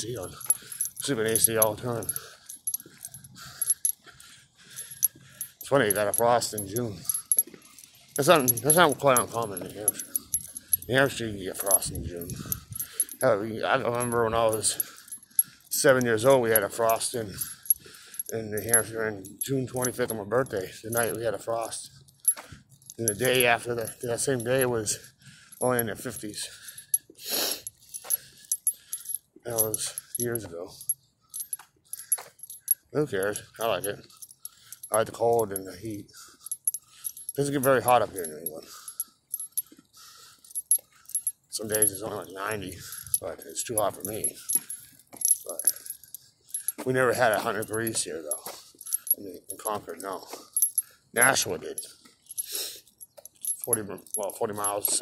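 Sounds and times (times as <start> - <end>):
small metal pieces jingling: 0.0 - 55.0.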